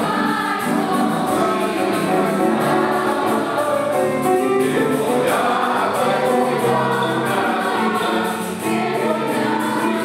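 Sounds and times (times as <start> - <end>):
mixed choir singing: 0.0 - 10.0.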